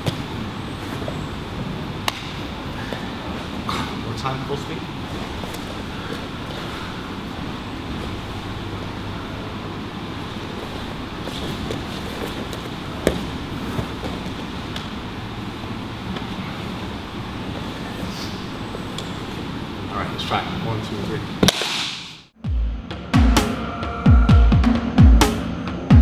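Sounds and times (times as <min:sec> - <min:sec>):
grappling on padded mat: 0:10.6 - 0:14.6.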